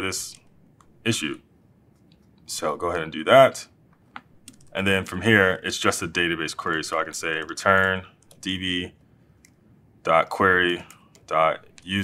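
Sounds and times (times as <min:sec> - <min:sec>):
man speaking: 0:00.0 - 0:00.4, 0:01.0 - 0:01.5, 0:02.4 - 0:03.8, 0:04.6 - 0:09.0, 0:10.0 - 0:12.0
laptop keystrokes: 0:04.2 - 0:04.7.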